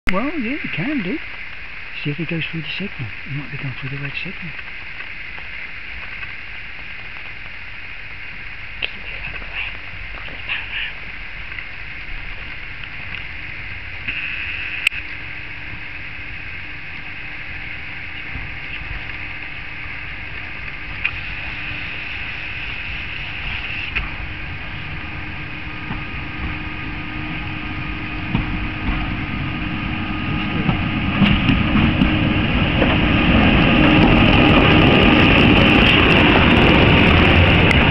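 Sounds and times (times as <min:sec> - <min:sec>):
diesel rail crane engine: 0:10.0 - 0:37.9.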